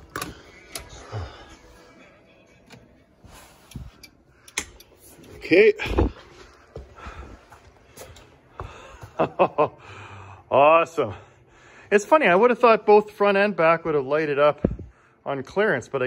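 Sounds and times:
clicks and knocks of switches: 3.7s - 5.0s.

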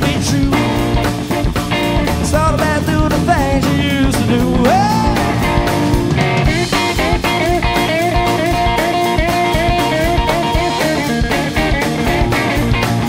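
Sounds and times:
bass guitar: 0.0s - 13.0s
drum kit: 0.0s - 13.0s
electric guitar solo with string bends: 1.4s - 13.0s.

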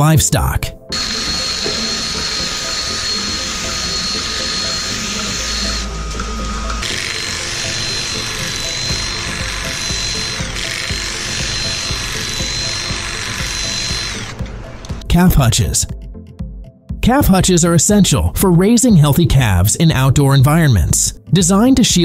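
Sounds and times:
background music: 0.0s - 22.0s
cordless drill whining: 0.9s - 15.1s.

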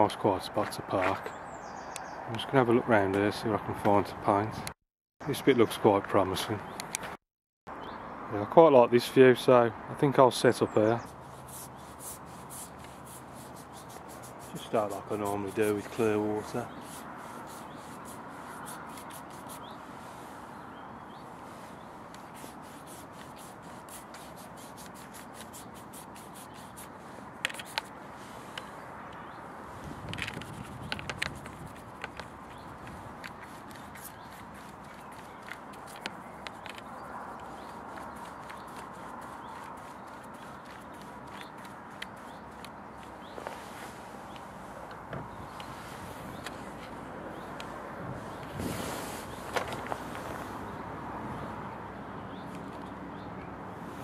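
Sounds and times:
outdoor background hiss: 7.8s - 30.2s, 31.2s - 54.0s
brush sweeping water on paper: 11.0s - 20.5s, 21.3s - 28.6s, 31.3s - 44.1s.

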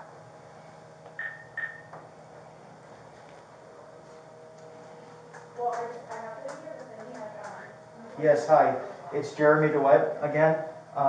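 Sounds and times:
short electronic beeps: 1.2s - 1.9s.

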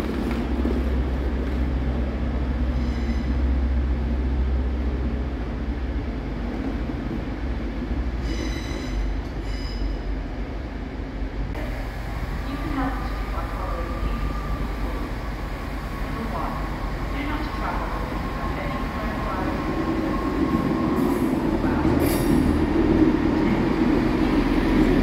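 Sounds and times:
train rumbling: 0.0s - 25.0s
train wheels squealing: 2.7s - 3.4s, 8.2s - 10.1s.

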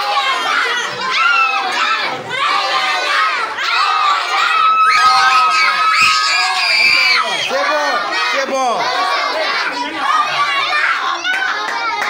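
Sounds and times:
young children talking and calling out: 0.0s - 12.0s.

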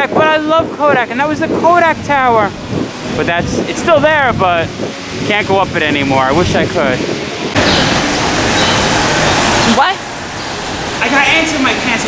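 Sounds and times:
rushing hiss of rainy street: 2.3s - 12.0s
man speaking: 3.2s - 7.1s.

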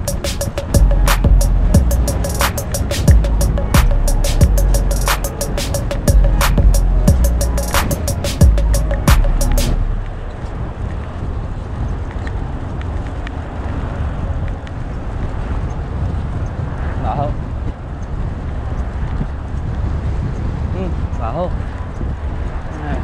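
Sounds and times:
background music: 0.0s - 10.4s
wind noise on microphone: 0.0s - 23.0s.

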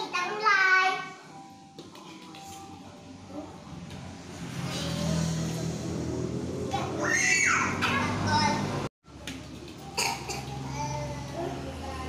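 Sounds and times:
children chattering and calling: 6.7s - 8.9s, 9.8s - 12.0s
child crying out: 7.0s - 7.9s.

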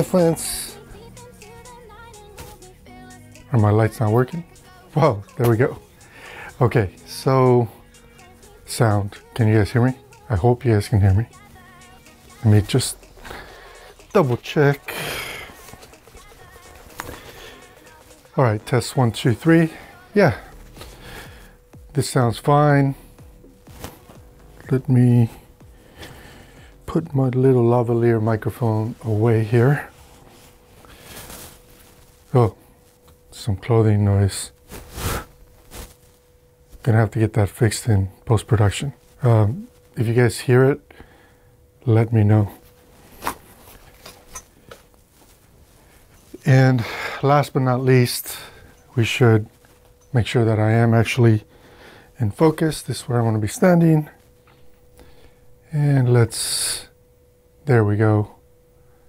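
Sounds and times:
faint background music: 0.0s - 58.8s
faint steady hum: 0.0s - 59.0s
headphones being handled: 2.3s - 2.7s, 12.0s - 21.3s, 23.4s - 24.8s, 29.7s - 33.3s, 34.6s - 36.8s, 42.6s - 46.5s, 48.2s - 50.2s
clothing rustling on microphone: 23.4s - 25.4s, 28.4s - 33.3s, 34.5s - 36.9s, 42.6s - 46.5s, 47.7s - 50.2s.

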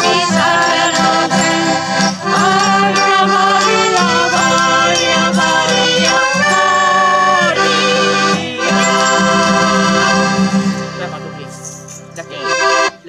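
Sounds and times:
accordion: 0.0s - 13.0s
acoustic guitar: 0.0s - 13.0s.

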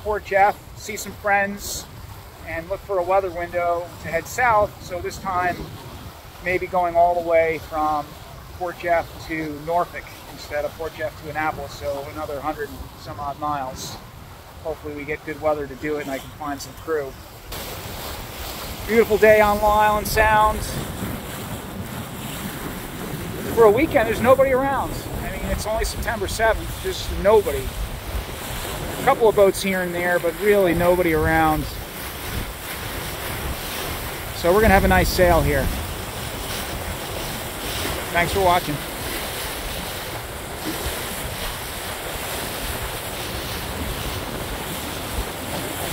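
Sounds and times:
water streaming past hull: 0.0s - 45.9s
wind buffeting microphone: 3.9s - 6.4s, 17.1s - 45.9s.

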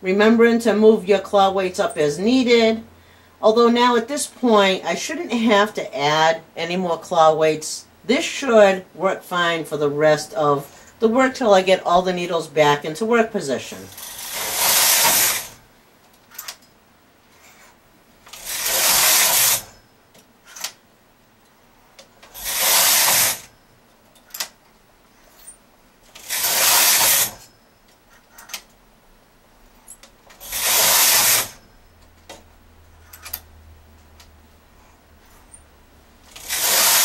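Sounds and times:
knitting machine carriage hiss: 13.5s - 15.7s, 17.3s - 19.8s, 22.2s - 23.5s, 25.1s - 27.5s, 30.3s - 31.6s, 36.2s - 37.0s.

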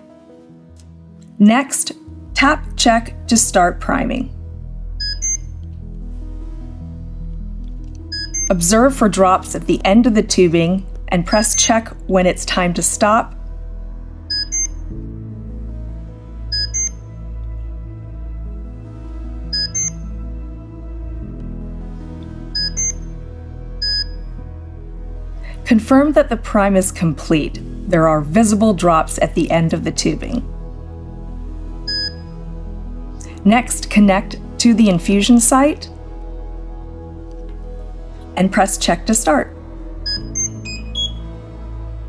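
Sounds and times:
soft background music: 0.0s - 42.0s
high electronic beeps: 5.0s - 5.6s, 8.1s - 8.7s, 14.3s - 14.9s, 16.5s - 17.0s, 19.5s - 20.1s, 22.6s - 23.1s, 23.8s - 24.3s, 31.9s - 32.3s, 40.1s - 41.3s.

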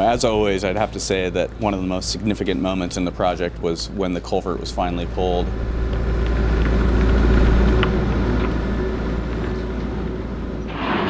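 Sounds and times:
excavator diesel engine rumbling: 0.0s - 11.0s.

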